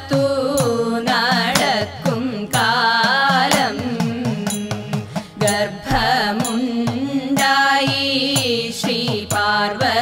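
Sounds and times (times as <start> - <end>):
people singing a folk song: 0.0 - 10.0.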